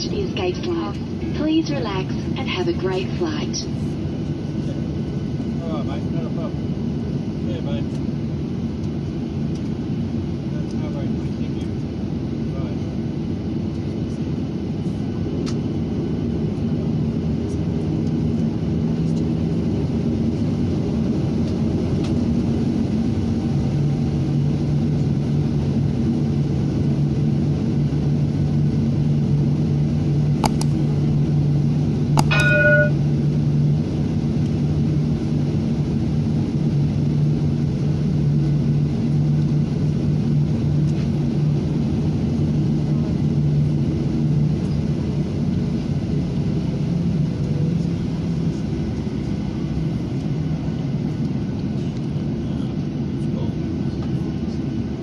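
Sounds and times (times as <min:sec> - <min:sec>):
low hum: 0:00.0 - 0:05.6, 0:26.8 - 0:42.3
jet engines rumbling: 0:00.0 - 0:55.0.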